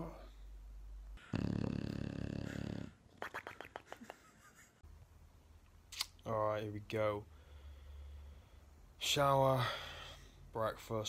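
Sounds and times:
dog snoring: 1.2s - 3.0s.

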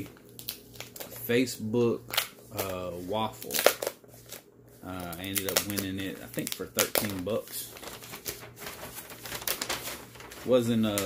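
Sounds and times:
packaging and comic books rustling: 0.0s - 11.0s.

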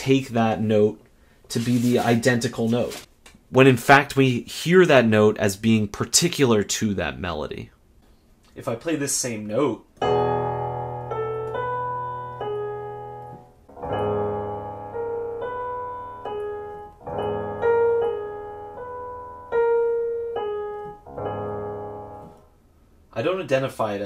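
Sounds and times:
piano playing chords: 10.0s - 22.7s.

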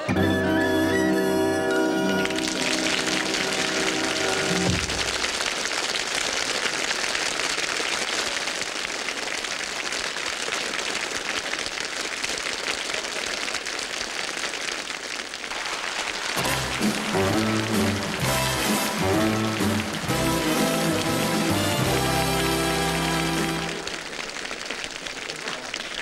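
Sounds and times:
audience applause: 0.0s - 26.0s.

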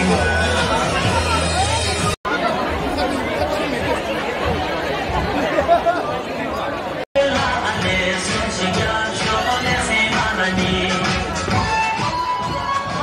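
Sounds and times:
circle-dance music: 0.0s - 2.2s, 7.2s - 13.0s
crowd chatter in a hall: 0.0s - 13.0s.

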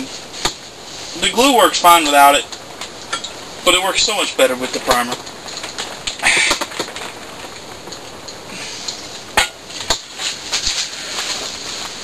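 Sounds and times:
short rustle: 0.0s - 1.6s, 8.6s - 12.0s.

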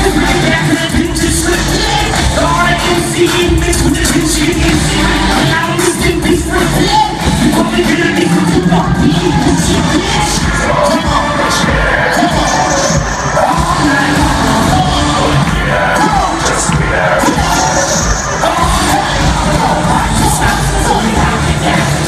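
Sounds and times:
crowd cheering: 0.0s - 22.0s
loud rap music over pa: 0.0s - 22.0s.

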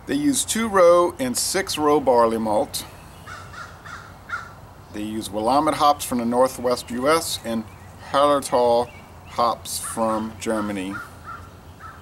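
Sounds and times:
bird calling: 2.8s - 5.9s, 6.8s - 12.0s.

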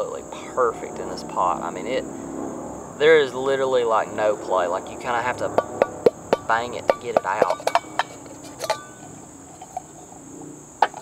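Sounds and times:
crickets chirring: 0.0s - 11.0s
pot knocking on table: 5.6s - 8.8s.

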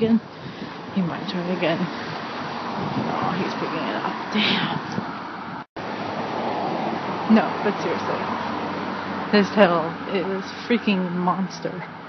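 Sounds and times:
road ambience: 0.0s - 12.0s
wind on microphone: 0.0s - 12.0s.

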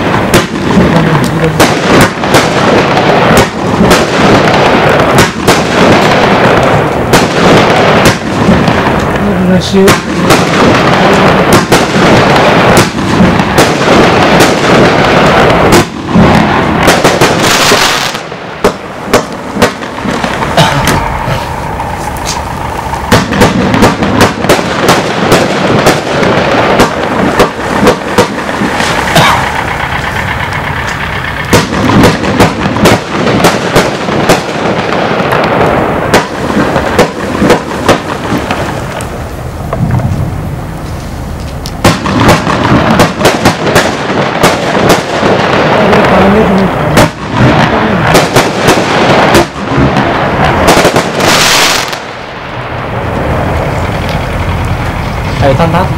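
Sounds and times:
firework cake shots and bangs: 0.0s - 21.6s, 22.3s - 40.2s, 41.7s - 52.6s.

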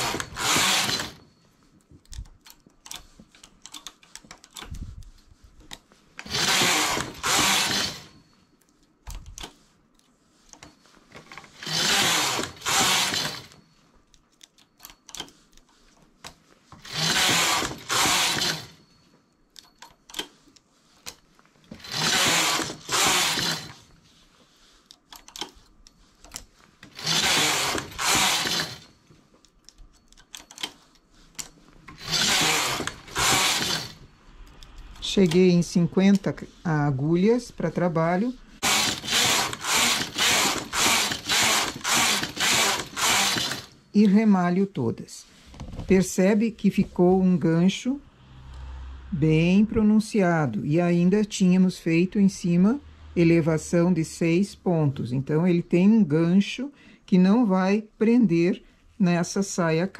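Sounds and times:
knitting machine carriage sweeping: 0.0s - 55.8s
transfer tool clicks: 2.0s - 8.0s, 24.9s - 36.3s, 38.6s - 44.2s.

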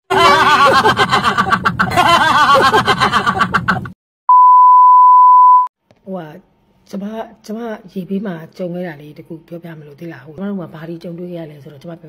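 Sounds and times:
steady test-tone beep: 4.3s - 5.7s.

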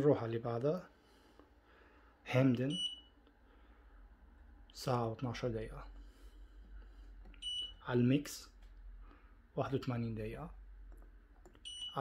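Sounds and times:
washing machine beep: 2.7s - 3.2s, 7.4s - 7.9s, 11.6s - 12.0s.

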